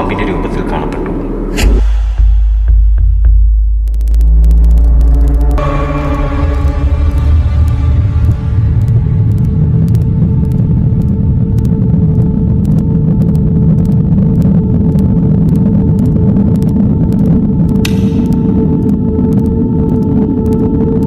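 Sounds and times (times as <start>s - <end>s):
low rumbling drone: 0.0s - 21.0s.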